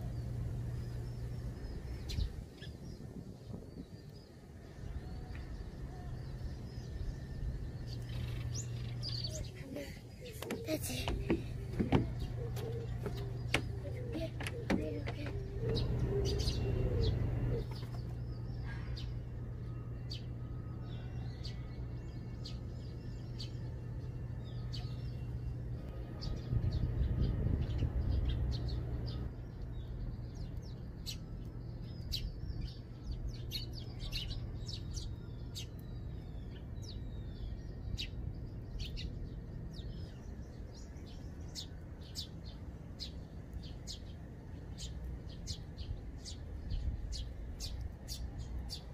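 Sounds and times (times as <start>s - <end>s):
sparrows chirping: 0.0s - 48.9s.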